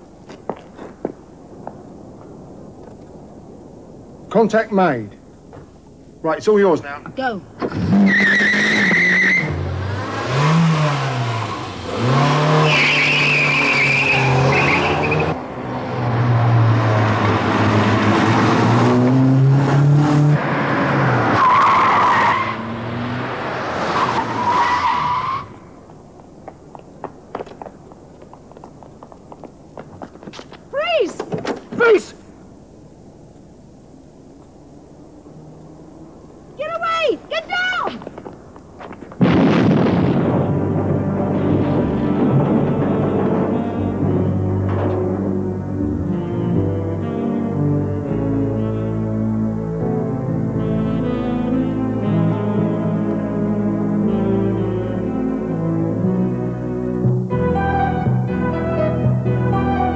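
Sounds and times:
tyre squeals: 0:07.6 - 0:09.6, 0:12.4 - 0:15.4
car engine revving hard: 0:07.7 - 0:21.4.

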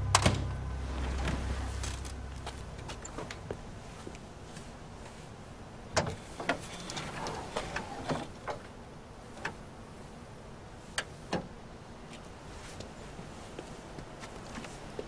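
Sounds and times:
car hood clicks and clunks: 0:00.1 - 0:02.3.

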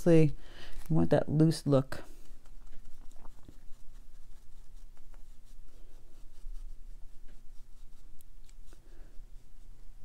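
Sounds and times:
brush stroking paper: 0:00.8 - 0:10.0.

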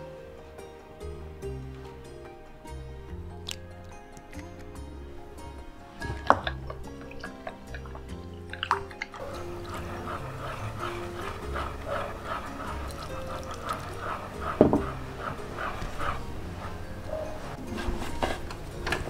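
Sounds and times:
background music: 0:00.0 - 0:19.0
chopsticks stirring in flour: 0:06.0 - 0:18.7
sharp knocks: 0:14.5 - 0:15.0.

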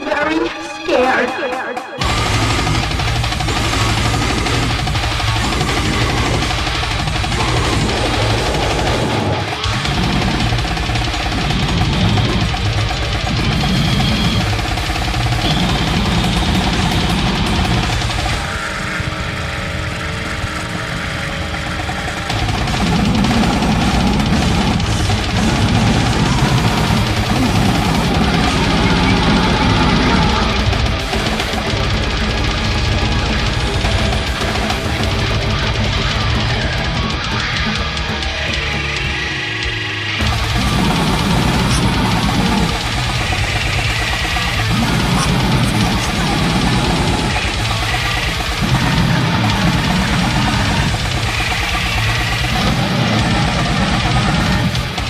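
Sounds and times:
death metal music: 0:00.0 - 0:55.0.

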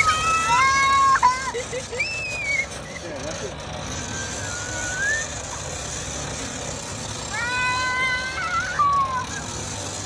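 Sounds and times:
children shrieking and squealing: 0:00.0 - 0:05.8, 0:07.2 - 0:10.0.

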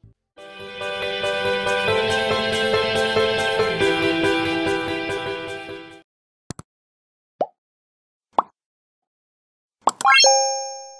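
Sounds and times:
rising chime notes: 0:10.1 - 0:10.9.

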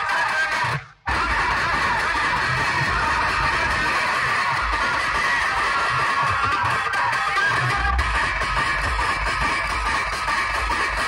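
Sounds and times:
loud music through speakers: 0:00.0 - 0:11.0
deep bass beats: 0:01.1 - 0:06.9, 0:07.5 - 0:11.0.

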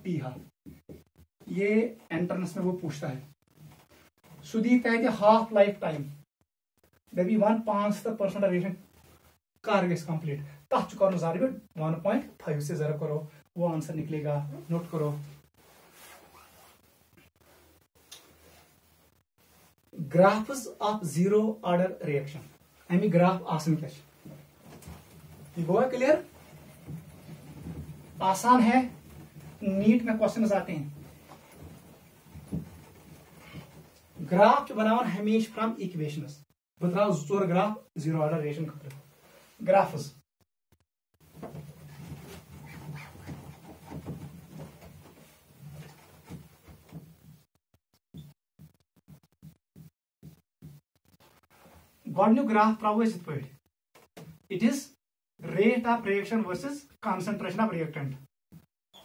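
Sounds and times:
soft rustle of movement: 0:14.4 - 0:20.0, 0:22.1 - 0:35.2, 0:41.2 - 0:47.4
marker squeaking on whiteboard: 0:41.5 - 0:46.7.

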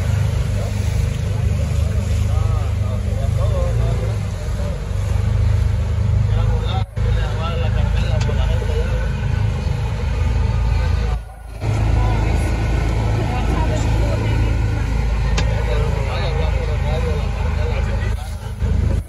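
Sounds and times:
background voices: 0:00.0 - 0:19.0
motorboat motor rumbling: 0:00.0 - 0:19.0.

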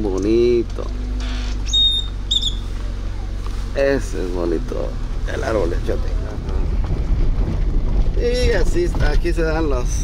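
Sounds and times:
steady low rumble: 0:00.0 - 0:10.0
bird chirping: 0:01.2 - 0:03.4.

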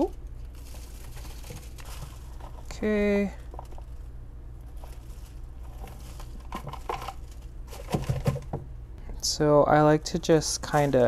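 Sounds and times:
plastic pot crinkling: 0:00.0 - 0:08.6
low hum: 0:00.0 - 0:11.0.

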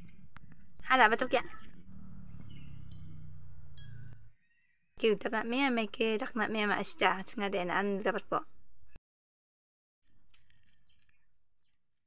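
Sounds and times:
steady low hum: 0:01.6 - 0:04.3.

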